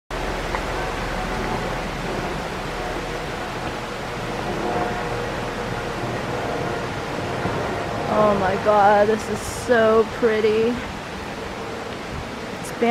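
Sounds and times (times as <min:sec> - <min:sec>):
low rumble: 0:00.1 - 0:12.9
steady rushing noise: 0:00.1 - 0:12.9.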